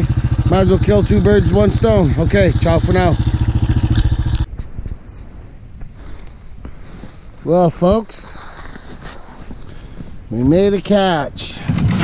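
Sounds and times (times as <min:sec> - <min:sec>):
atv engine idling: 0:00.0 - 0:04.5
faint outdoor noise: 0:00.0 - 0:12.0.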